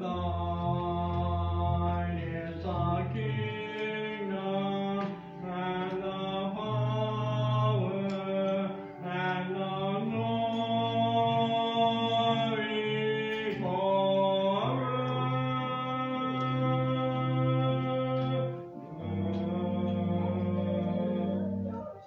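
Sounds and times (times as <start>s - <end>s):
congregation singing a hymn: 0.0s - 22.0s
sustained accompanying chords: 0.0s - 22.0s.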